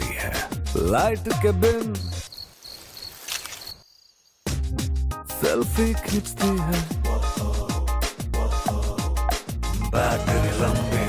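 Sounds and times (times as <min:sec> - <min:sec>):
crickets chirping: 0:01.8 - 0:04.6.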